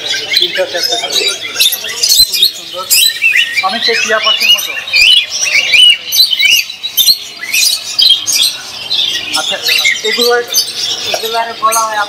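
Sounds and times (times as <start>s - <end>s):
birds chirping and squawking: 0.0s - 12.0s.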